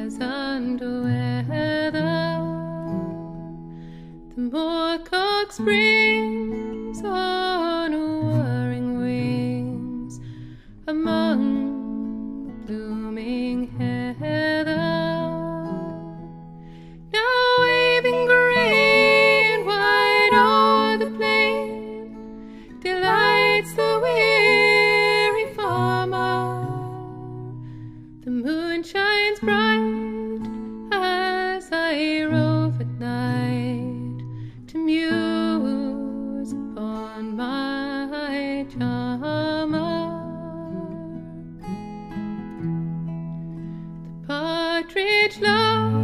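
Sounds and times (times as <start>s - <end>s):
woman singing folk melody: 0.0s - 46.0s.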